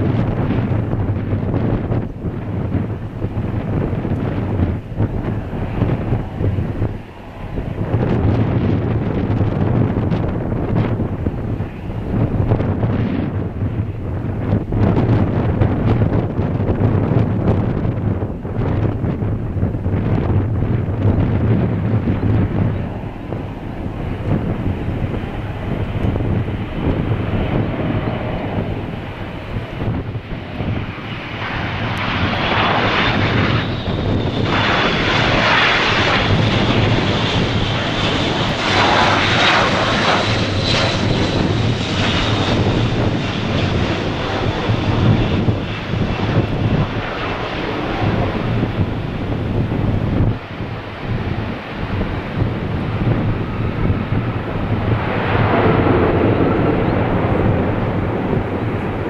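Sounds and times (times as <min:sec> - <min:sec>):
high turbine whine: 0:00.0 - 0:59.0
turboprop aircraft engines: 0:00.0 - 0:59.0.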